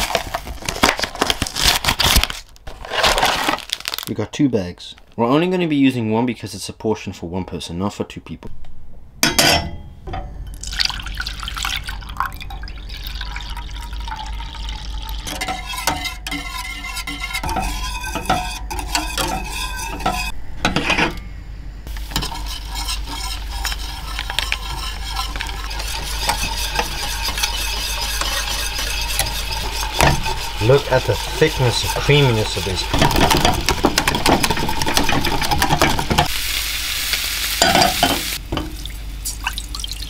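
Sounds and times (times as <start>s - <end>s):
whisk scraping a steel saucepan: 15.2s - 21.2s, 21.9s - 36.3s
pan clanking on stove grate: 22.1s - 36.3s, 37.6s - 38.8s.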